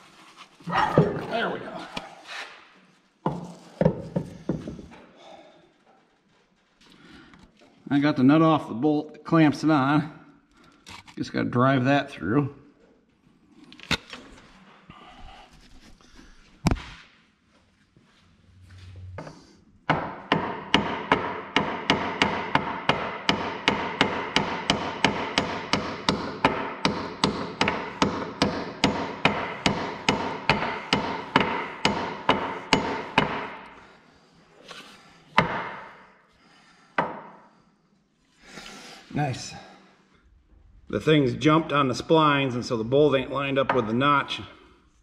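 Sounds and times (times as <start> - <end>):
hammer striking steel: 19.9 - 33.7.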